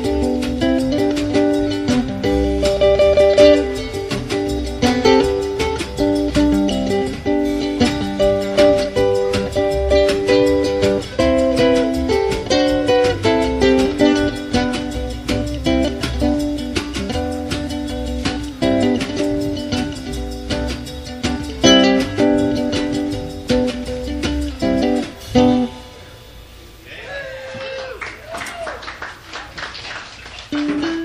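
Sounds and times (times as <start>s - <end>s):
wash-tub bass: 0.0s - 25.8s
drum kit: 0.0s - 25.9s
electric ukulele picking melody: 0.0s - 26.4s, 30.5s - 31.0s.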